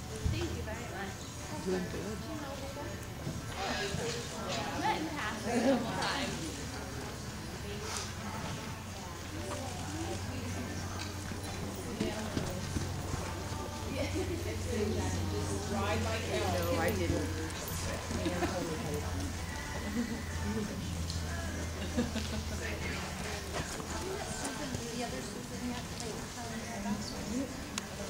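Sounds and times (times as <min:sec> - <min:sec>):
people talking in background: 0:00.0 - 0:28.0
hooves on dirt: 0:07.8 - 0:14.6
horse hoofbeats on sand: 0:11.1 - 0:13.8.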